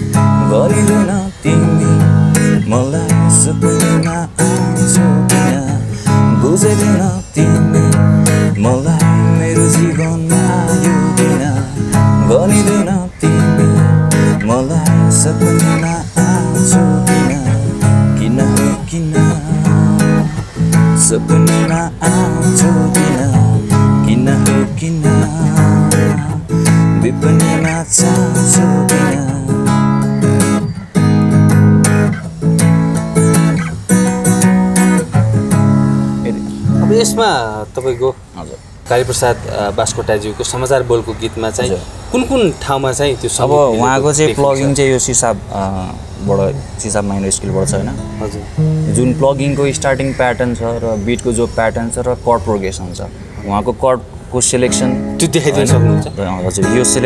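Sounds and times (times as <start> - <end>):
man singing: 0.0 - 30.1, 55.0 - 57.0
acoustic guitar strumming: 0.0 - 39.9, 40.5 - 53.4, 54.0 - 57.0.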